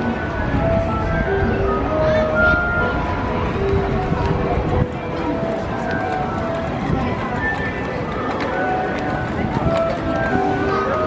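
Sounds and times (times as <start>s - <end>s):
amusement ride noise: 0.0s - 11.0s
indistinct crowd voices: 0.0s - 11.0s
music in short held notes: 0.0s - 11.0s.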